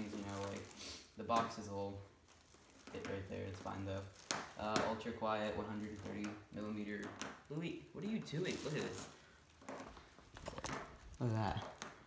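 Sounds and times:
plastic packing crinkling: 0.0s - 12.0s.

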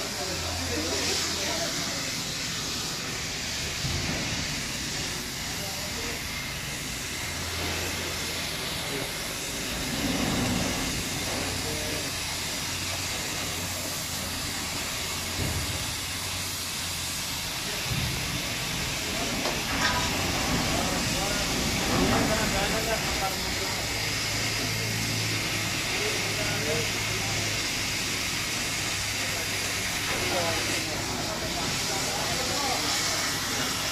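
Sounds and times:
steady hissing noise: 0.0s - 33.9s.

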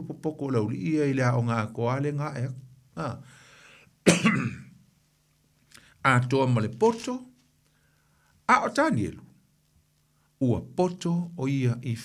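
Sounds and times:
man coughing: 4.0s - 4.7s.

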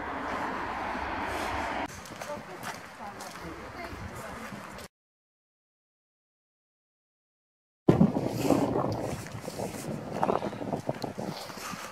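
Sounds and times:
wind buffeting microphone: 0.0s - 4.8s, 7.9s - 11.9s
footsteps on paving stones: 1.4s - 4.9s, 7.9s - 11.9s.

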